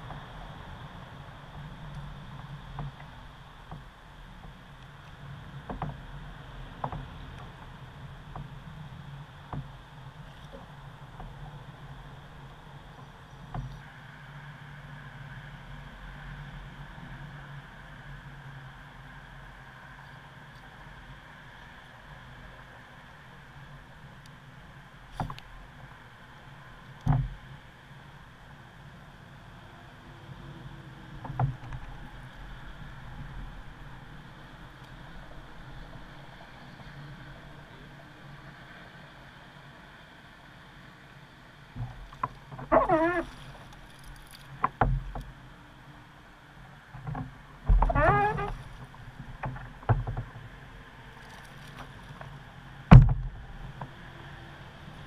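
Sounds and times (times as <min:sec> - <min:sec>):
sharp knocks on kayak hull: 0:27.1 - 0:27.4, 0:52.9 - 0:53.4.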